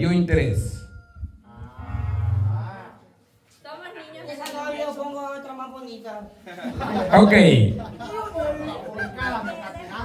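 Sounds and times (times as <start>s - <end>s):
low moo-like call: 1.4s - 3.0s.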